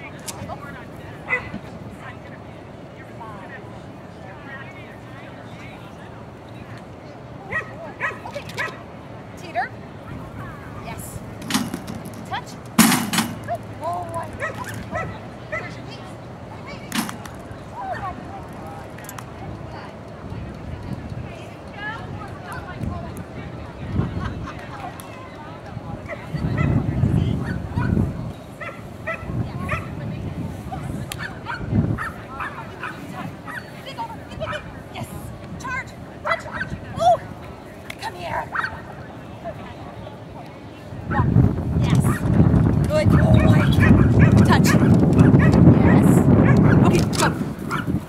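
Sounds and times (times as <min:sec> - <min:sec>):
dog yipping: 0:07.5 - 0:08.8, 0:28.6 - 0:29.9, 0:31.2 - 0:33.7
wind buffeting microphone: 0:09.9 - 0:37.7, 0:40.8 - 0:48.0.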